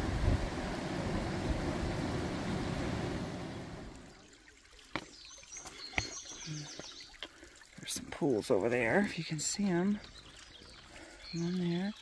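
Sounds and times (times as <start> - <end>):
rushing hiss of outdoor noise: 0.0 - 4.0
small bird chirping: 5.2 - 7.2, 9.0 - 12.0.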